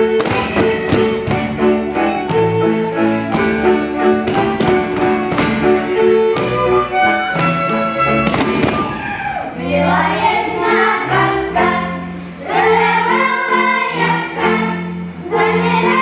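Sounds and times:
folk dance music: 0.0s - 16.0s
children singing: 6.9s - 16.0s.

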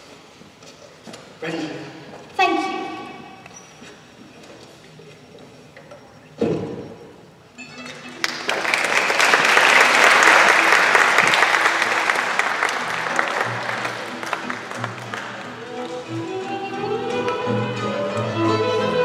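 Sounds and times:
recorded string music: 7.6s - 19.0s
audience applause: 8.0s - 16.2s.

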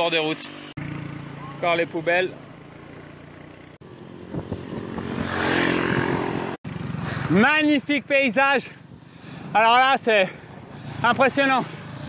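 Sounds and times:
small motorbike engine running: 0.0s - 8.0s, 10.3s - 12.0s
road and wind noise: 0.0s - 12.0s.

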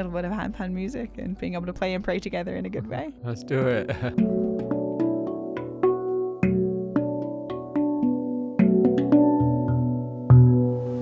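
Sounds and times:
handpan notes ringing: 3.4s - 11.0s.

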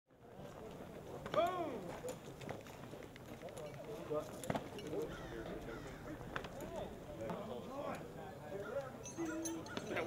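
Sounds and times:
people chattering: 0.1s - 10.0s.

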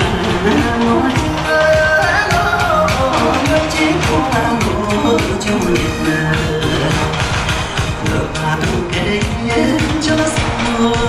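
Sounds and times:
person singing over a beat: 0.0s - 11.0s.

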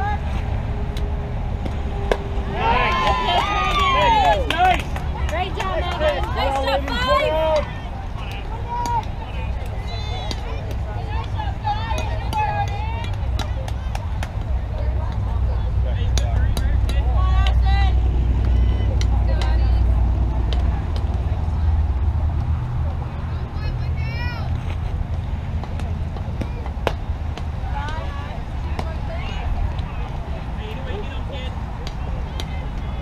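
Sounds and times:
people calling out and chattering: 0.0s - 33.0s
steady low rumble: 0.0s - 33.0s.

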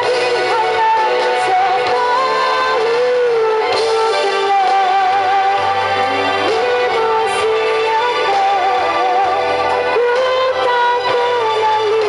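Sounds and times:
backing music track: 0.0s - 12.0s
woman singing into a microphone: 0.0s - 12.0s.

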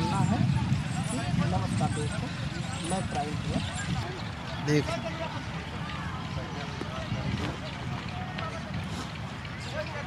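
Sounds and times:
distant overlapping voices: 0.0s - 10.0s.

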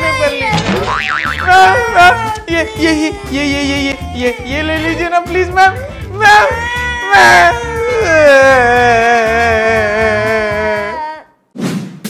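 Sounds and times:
cartoon springy boing: 0.7s - 1.5s.

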